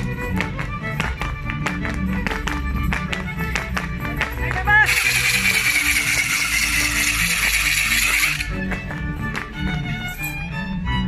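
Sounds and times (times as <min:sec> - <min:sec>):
dance-band music with violin: 0:00.0 - 0:11.0
high-pitched rattling noise: 0:04.8 - 0:08.5.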